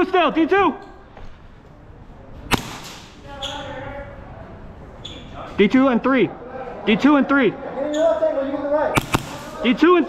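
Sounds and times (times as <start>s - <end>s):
airsoft gun shot: 2.5s - 3.2s, 9.0s - 9.7s.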